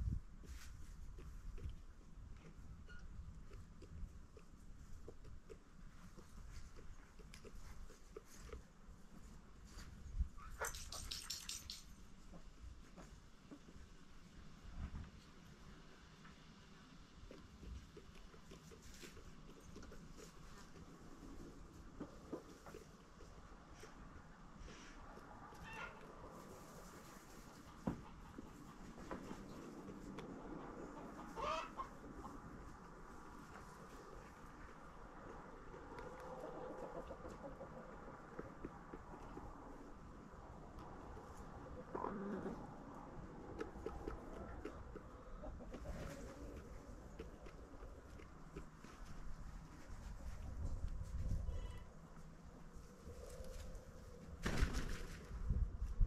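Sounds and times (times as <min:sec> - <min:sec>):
hens clucking softly: 0:15.4 - 0:54.2.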